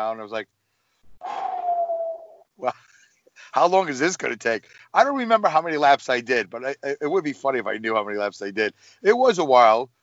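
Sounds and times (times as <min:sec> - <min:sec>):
man speaking: 0:00.0 - 0:00.4, 0:03.4 - 0:09.9.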